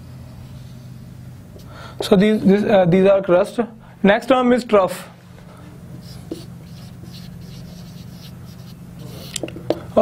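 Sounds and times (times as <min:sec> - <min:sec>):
marker pen scratching on whiteboard: 0:06.0 - 0:09.8
marker pen tapping: 0:06.3 - 0:07.3, 0:09.2 - 0:09.8.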